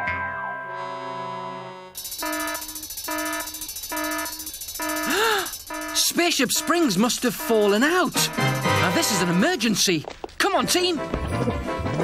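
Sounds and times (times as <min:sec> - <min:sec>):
repeating electronic alert beep: 0:02.0 - 0:09.5.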